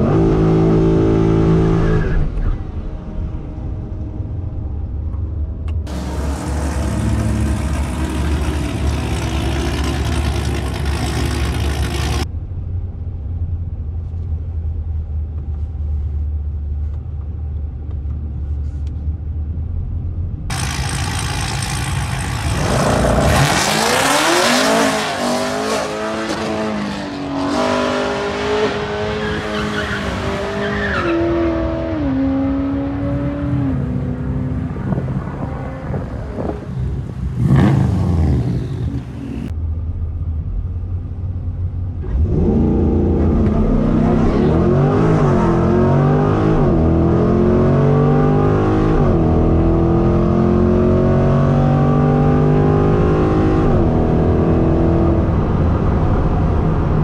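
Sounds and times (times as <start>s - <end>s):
car engine at full throttle: 0.0s - 15.7s, 19.6s - 57.0s.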